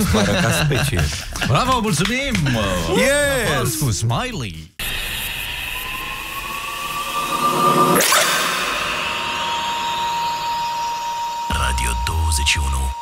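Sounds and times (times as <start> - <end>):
rising tone: 4.8 - 12.2.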